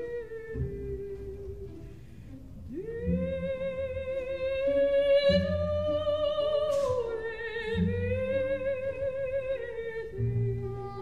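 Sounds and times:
soprano singing with vibrato: 0.0 - 1.9, 2.7 - 11.0
soft orchestral accompaniment: 0.0 - 11.0.

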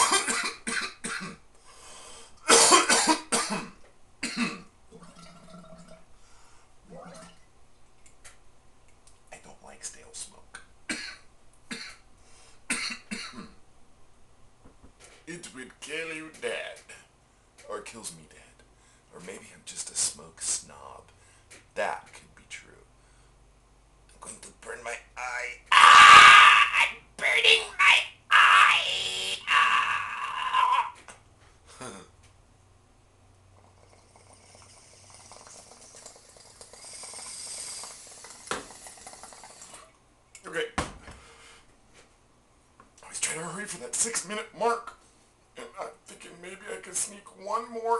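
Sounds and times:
man coughing: 0.0 - 1.4, 2.5 - 4.7, 12.7 - 13.6
water bubbling in water pipe: 33.6 - 39.9.

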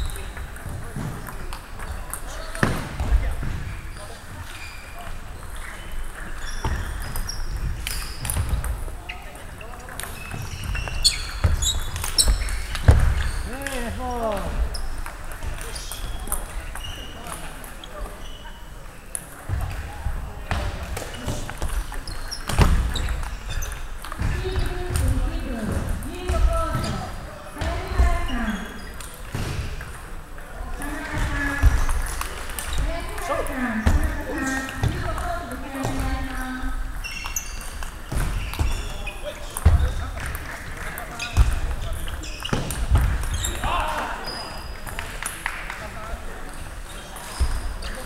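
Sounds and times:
table tennis balls bouncing: 0.0 - 3.7, 4.4 - 17.8, 20.5 - 28.2, 28.8 - 45.8
people talking: 13.5 - 14.6, 24.2 - 28.8, 30.6 - 31.9, 32.7 - 36.8.

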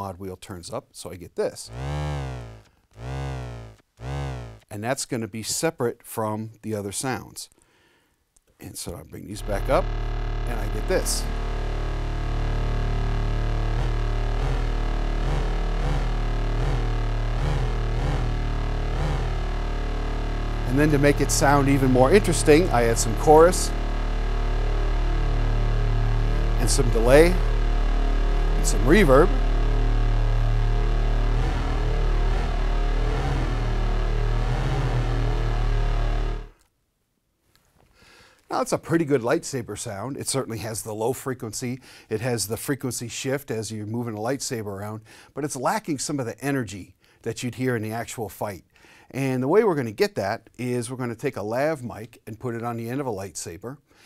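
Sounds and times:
synthesizer lightsaber hum: 1.7 - 4.6, 9.4 - 36.5.

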